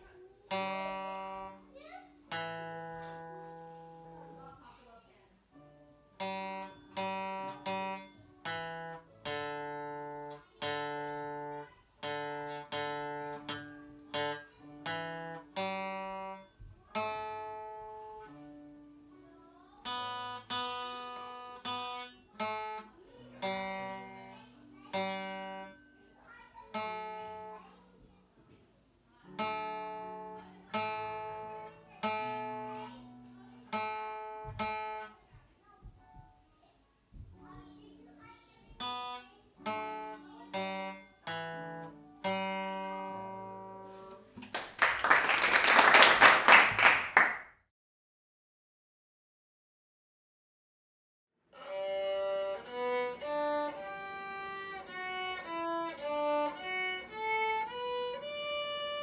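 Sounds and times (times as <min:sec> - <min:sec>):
acoustic guitar chords ringing: 0:00.5 - 0:04.4, 0:05.6 - 0:19.1, 0:19.8 - 0:27.6, 0:29.3 - 0:35.0, 0:38.8 - 0:44.4.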